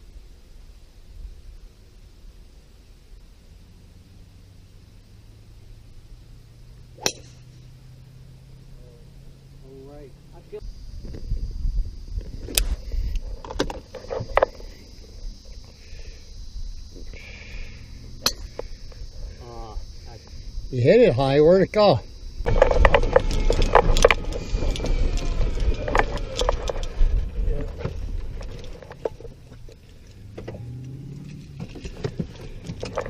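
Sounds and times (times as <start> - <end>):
golf cart humming: 3.1 - 11.2, 12.2 - 33.0
golf club striking ball: 7.0 - 7.7, 18.2 - 18.8.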